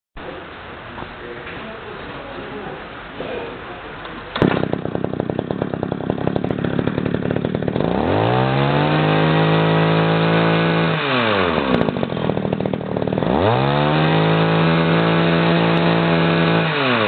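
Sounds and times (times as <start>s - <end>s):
hedge trimmer engine: 4.3s - 17.0s.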